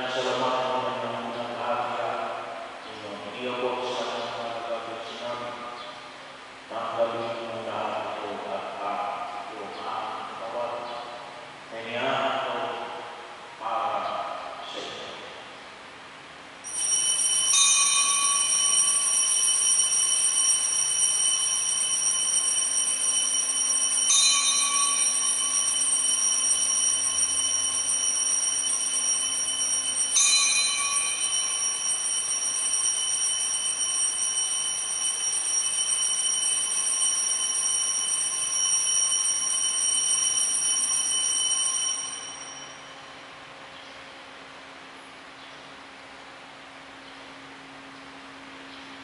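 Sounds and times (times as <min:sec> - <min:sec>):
altar bells ringing: 0:16.6 - 0:43.3.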